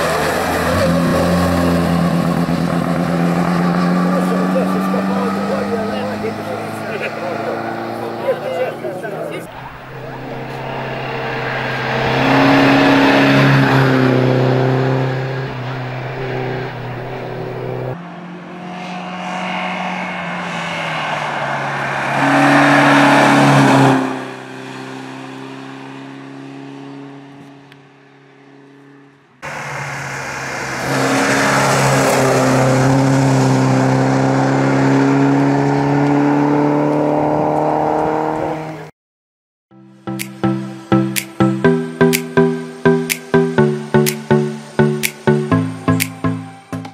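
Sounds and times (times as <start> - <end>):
racing car engine at high revs: 0.0 - 38.9, 41.2 - 46.4.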